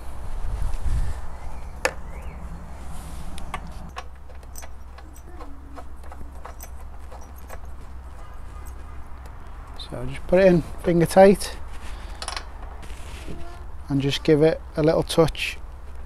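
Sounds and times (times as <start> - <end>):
ratchet and socket clinking: 3.9 - 8.8.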